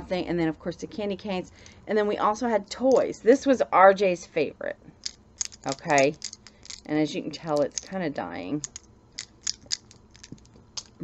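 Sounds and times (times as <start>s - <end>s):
wooden toy parts clacking: 5.0s - 8.0s, 8.6s - 11.0s.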